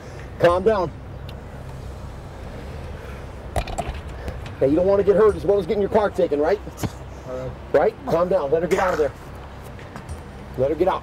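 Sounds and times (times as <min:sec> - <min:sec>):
faint street noise: 0:00.0 - 0:11.0.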